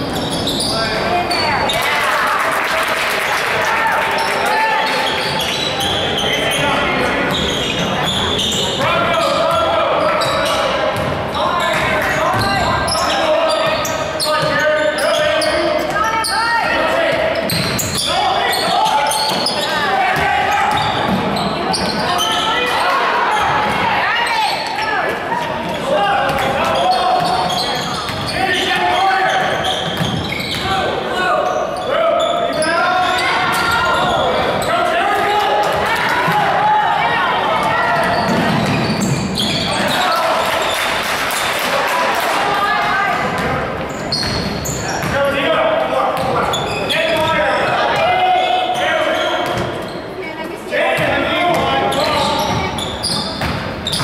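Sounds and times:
players and spectators calling out: 0.0 - 54.0.

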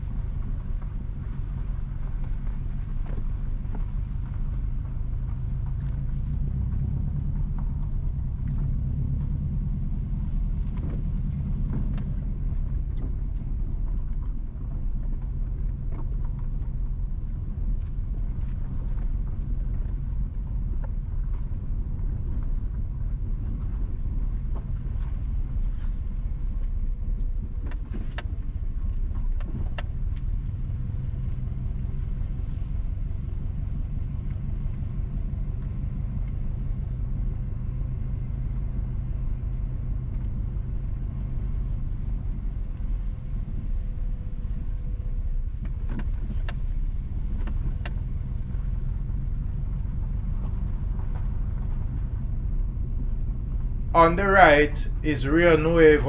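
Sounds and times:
car engine and tyres rumbling: 0.0 - 56.0.

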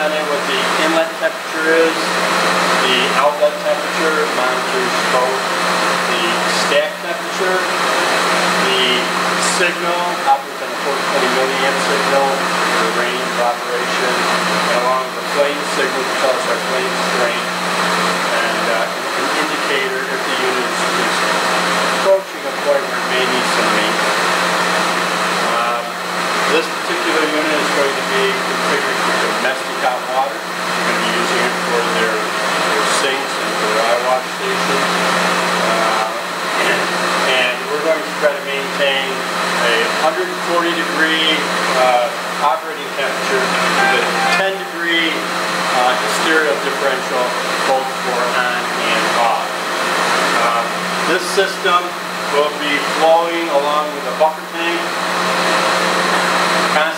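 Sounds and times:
man talking: 0.0 - 2.2, 2.8 - 7.8, 8.6 - 17.5, 18.3 - 21.3, 22.0 - 24.0, 25.4 - 35.0, 35.6 - 49.6, 50.4 - 54.9
fan-like rushing with low hum: 0.0 - 38.3, 38.9 - 53.1.

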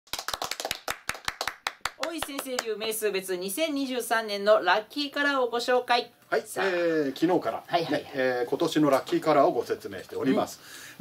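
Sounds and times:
people clapping hands: 0.1 - 2.8.

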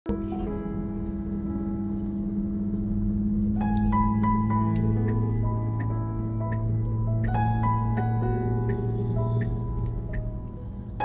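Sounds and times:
low held music notes: 0.1 - 11.0.

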